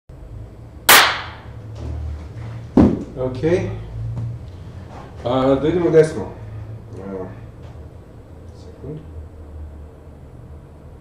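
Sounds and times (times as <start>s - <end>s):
steady low hum: 0.1s - 11.0s
sharp bang with room echo: 0.9s - 1.5s.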